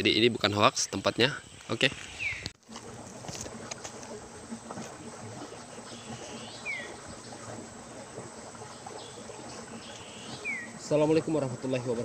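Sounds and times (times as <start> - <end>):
water trickling: 0.0 - 12.0
bird whistle: 10.0 - 10.8.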